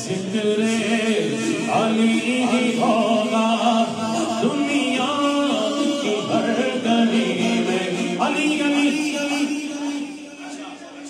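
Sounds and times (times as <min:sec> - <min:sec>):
man singing into a microphone: 0:00.0 - 0:11.0
voices singing along: 0:00.0 - 0:11.0.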